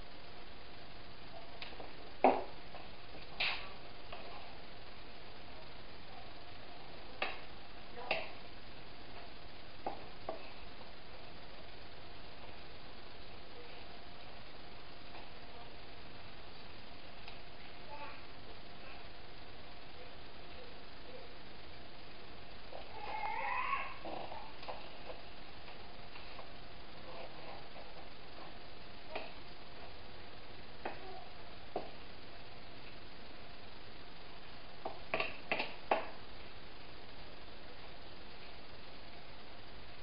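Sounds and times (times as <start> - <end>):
soft hiss: 0.0 - 40.0
cat meowing: 22.9 - 24.5.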